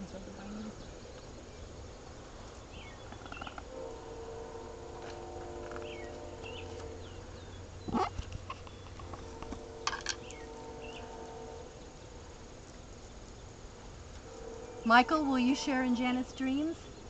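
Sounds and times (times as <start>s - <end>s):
steady hum of held tones: 0.0s - 17.0s.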